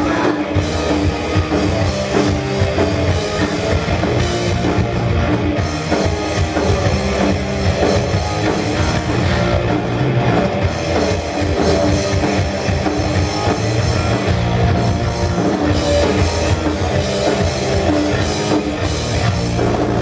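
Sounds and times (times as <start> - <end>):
bass guitar: 0.0 - 20.0
drum kit: 0.0 - 20.0
electric guitars: 0.0 - 20.0.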